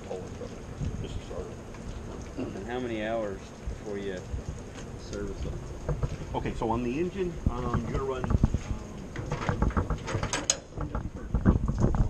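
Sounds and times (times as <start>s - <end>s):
mechanical clicking and rattling: 9.2s - 12.0s.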